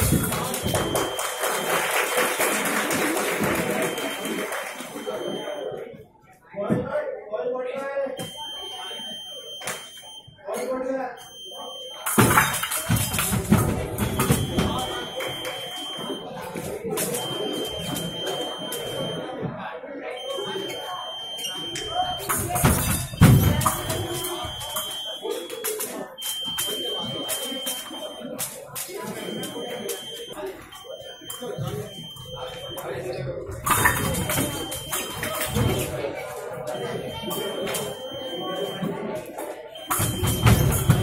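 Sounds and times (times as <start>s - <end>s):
scoring box high beep: 0.0s - 2.1s, 3.0s - 5.8s, 8.2s - 10.3s, 11.2s - 19.3s, 20.2s - 38.9s, 39.8s - 41.0s
people talking: 0.0s - 41.0s.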